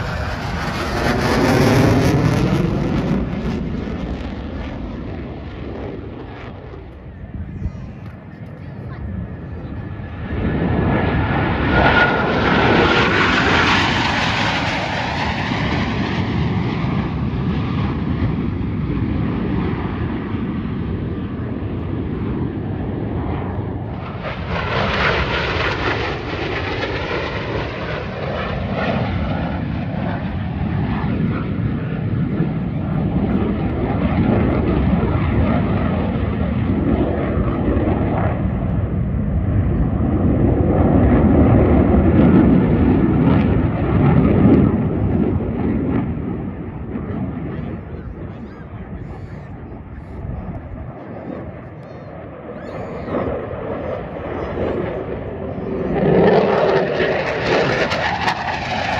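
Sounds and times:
jets roaring overhead: 0.0s - 58.9s.

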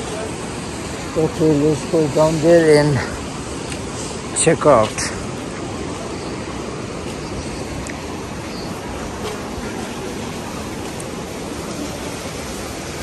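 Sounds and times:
white-water river rushing: 0.0s - 13.0s.

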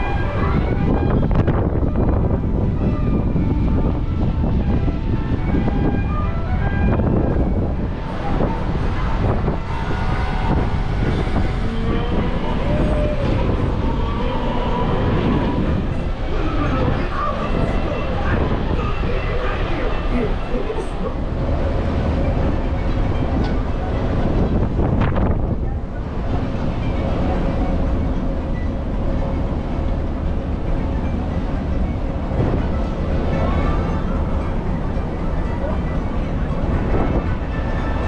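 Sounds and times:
wind rumbling on microphone: 0.0s - 38.0s
indistinct voices: 7.9s - 27.6s, 32.0s - 38.0s.

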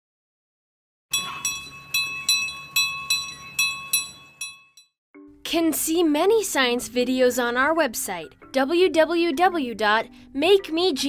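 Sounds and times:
bright bell-like chime jingle: 1.1s - 4.9s.

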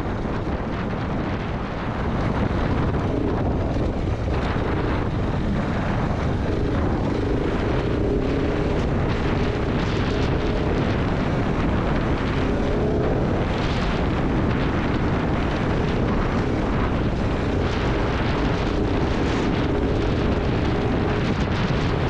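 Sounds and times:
motorcycle engine running: 0.0s - 22.0s
riding noise rumble: 0.0s - 22.0s.

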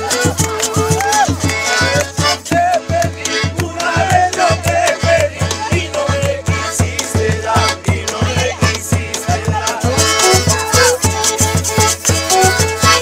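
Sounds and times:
acoustic guitars strumming: 0.0s - 13.0s
voices singing: 0.0s - 13.0s.

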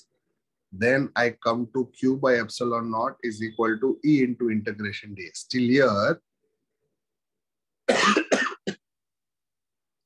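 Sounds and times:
man coughing: 7.9s - 8.9s.

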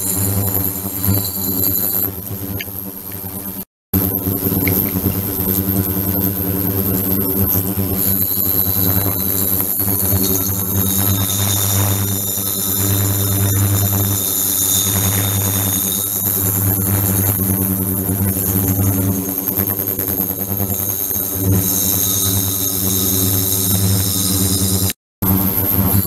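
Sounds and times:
high-pitched whining tones: 0.0s - 2.9s
buzzing hum: 0.0s - 26.0s.

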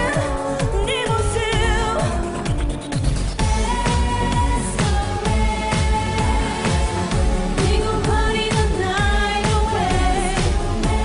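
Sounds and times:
female vocals over electronic beat: 0.0s - 2.8s, 3.4s - 11.0s.

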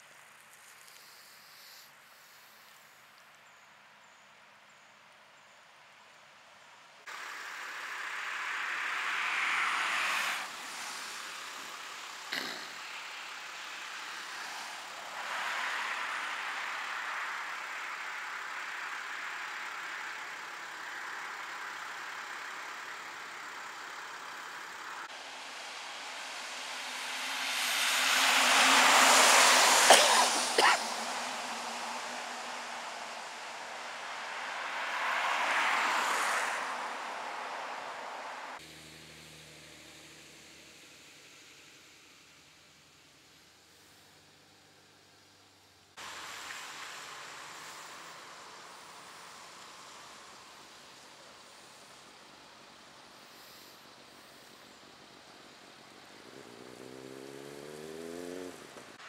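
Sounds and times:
road traffic hiss: 0.0s - 59.0s
vehicle passing: 7.1s - 18.4s, 25.1s - 40.7s, 56.0s - 59.0s.

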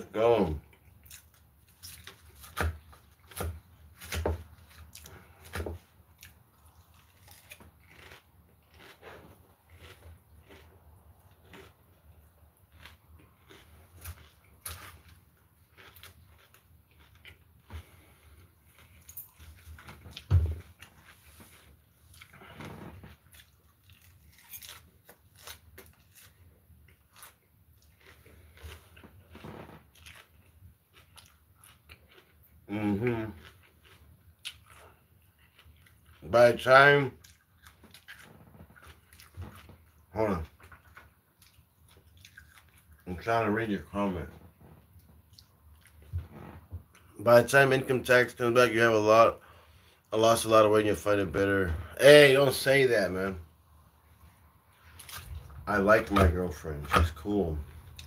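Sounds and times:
chewing crisp lettuce: 0.0s - 51.2s, 54.0s - 58.0s.

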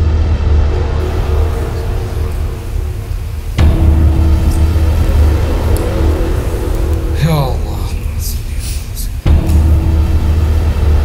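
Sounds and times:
music with deep bass drone: 0.0s - 11.0s.

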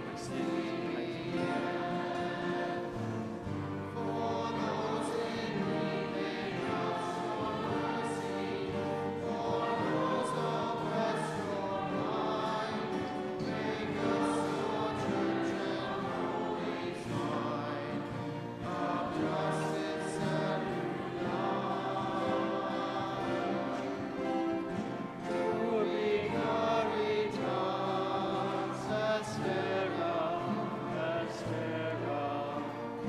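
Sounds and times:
choir singing a hymn: 0.0s - 33.0s.

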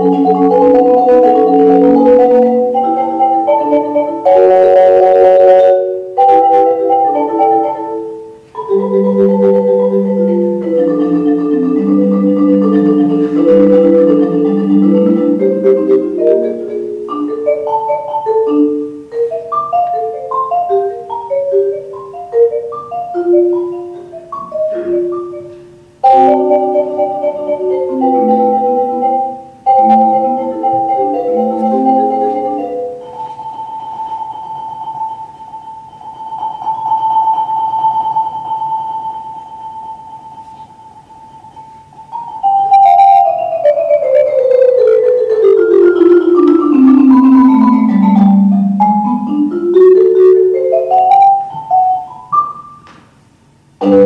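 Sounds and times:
marimba melody: 0.0s - 52.9s, 53.8s - 54.0s.

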